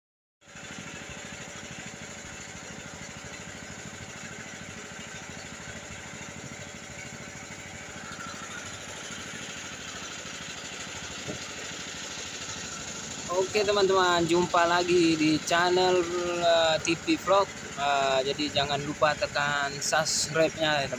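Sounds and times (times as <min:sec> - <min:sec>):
boat engine puttering: 0:00.5 - 0:20.9.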